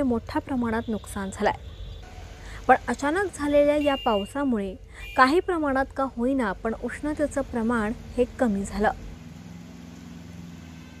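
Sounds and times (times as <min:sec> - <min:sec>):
low engine hum: 0:06.0 - 0:11.0
rain falling on wet street: 0:07.0 - 0:11.0.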